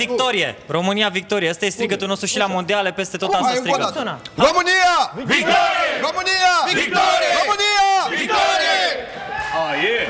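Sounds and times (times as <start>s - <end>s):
voices talking: 3.2s - 8.4s
men shouting and cheering: 3.3s - 10.0s.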